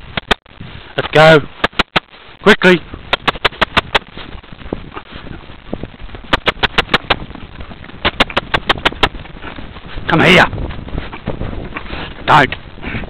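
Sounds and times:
low rumble of movement and wind: 0.0 - 13.0
sharp rapid clicks: 1.6 - 2.1, 3.1 - 4.1, 6.3 - 7.3, 8.0 - 9.2.

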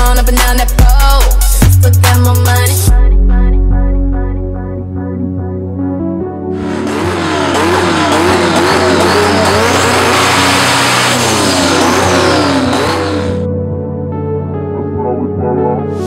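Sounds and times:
music playing: 0.0 - 16.0
race car engine revving: 6.5 - 13.5.

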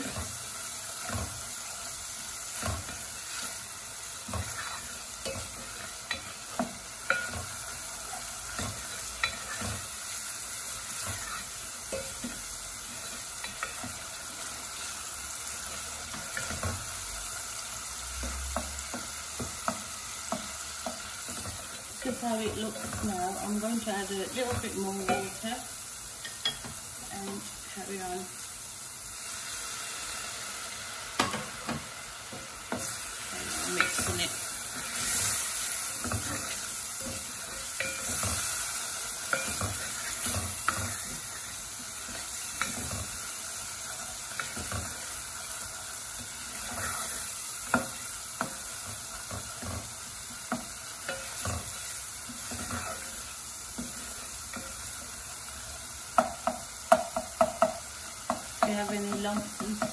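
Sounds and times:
paste sizzling in a pot: 0.0 - 59.9
spoon stirring and scraping: 4.3 - 14.5, 32.7 - 55.0.

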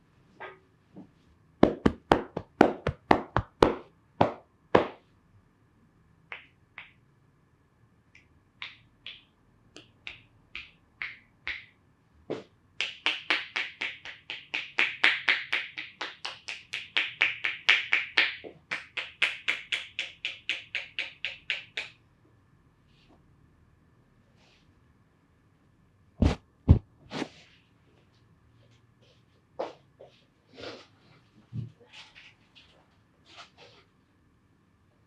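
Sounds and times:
hands slapping body: 1.6 - 5.0
quick massage taps: 1.6 - 5.0.

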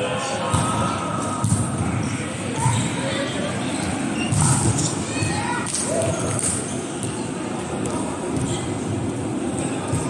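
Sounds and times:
low rumble of large hall: 0.0 - 10.0.

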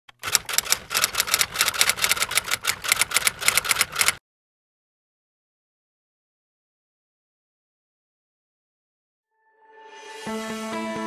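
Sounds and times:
typewriter keys clacking: 0.1 - 4.2.

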